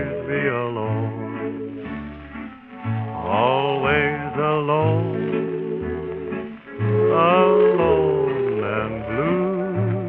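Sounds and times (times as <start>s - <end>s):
person singing: 0.0s - 1.8s, 3.1s - 6.0s, 6.8s - 10.0s
string band playing: 0.0s - 10.0s.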